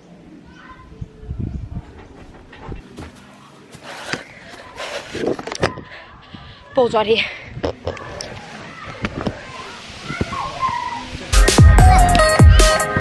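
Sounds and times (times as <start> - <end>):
person clambering over wooden fence: 2.3 - 5.8.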